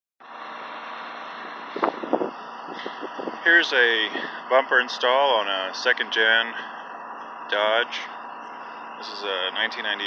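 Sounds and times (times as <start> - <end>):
outdoor background noise: 0.2 - 10.0.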